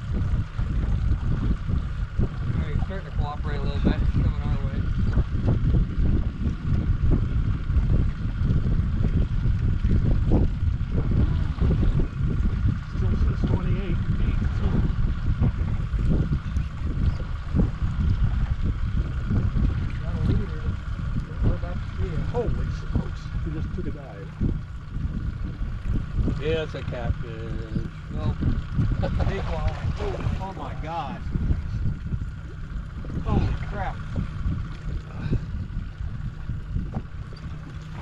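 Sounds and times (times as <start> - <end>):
faint high hum: 0.0 - 38.0
wind buffeting microphone: 0.0 - 38.0.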